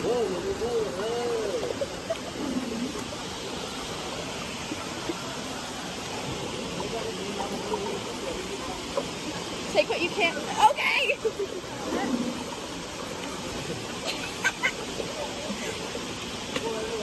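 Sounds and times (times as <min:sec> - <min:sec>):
faint voices: 0:00.0 - 0:17.0
river water rushing: 0:00.0 - 0:17.0.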